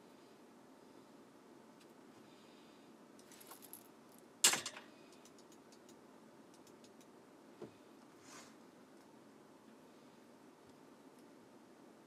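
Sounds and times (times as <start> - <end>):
clatter of small hard objects: 3.2 - 5.4
faint clicks: 5.1 - 7.2.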